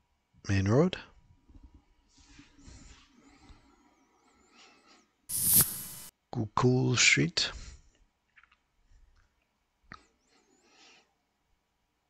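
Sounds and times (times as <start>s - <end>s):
breath hiss close to microphone: 5.3s - 6.1s.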